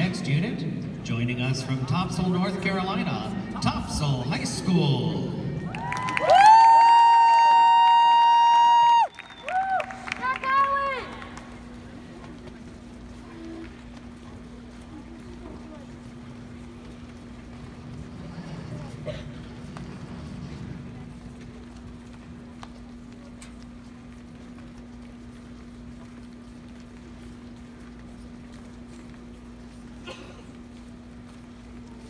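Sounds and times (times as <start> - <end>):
low room hum: 0.0 - 32.0
spectators cheering woo: 5.7 - 11.1.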